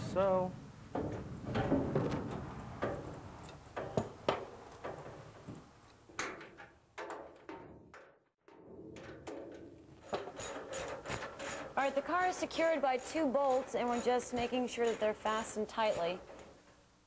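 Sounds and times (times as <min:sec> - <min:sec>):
metal parts knocking and clanking: 0:06.1 - 0:15.2.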